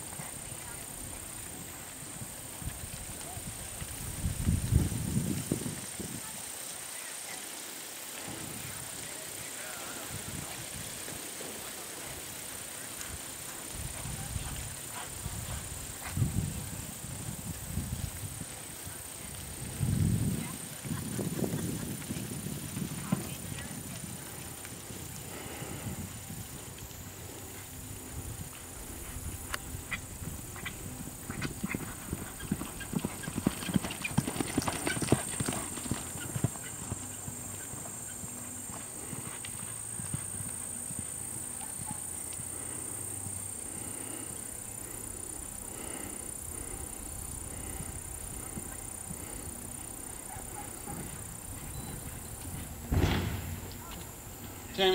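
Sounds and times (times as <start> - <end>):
horse hoofbeats on dirt: 12.8 - 17.5, 18.2 - 26.8, 28.4 - 42.2, 47.5 - 54.9.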